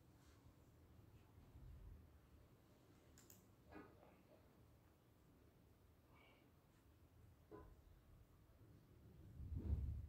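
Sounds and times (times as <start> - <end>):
quick faint clicks: 3.1 - 3.5.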